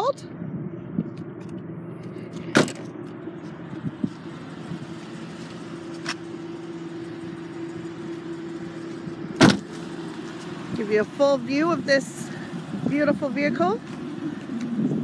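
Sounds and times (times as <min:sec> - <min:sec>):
steady low hum: 0:00.2 - 0:15.0
car trunk lid slamming: 0:02.5 - 0:02.8, 0:09.4 - 0:09.8
car door slamming: 0:02.5 - 0:02.9, 0:09.4 - 0:09.9.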